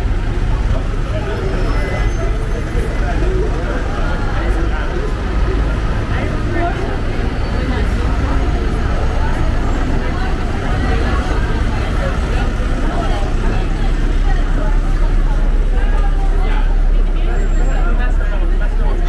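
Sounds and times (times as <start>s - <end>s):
bus engine rumble: 0.0s - 19.0s
passers-by talking: 0.0s - 19.0s.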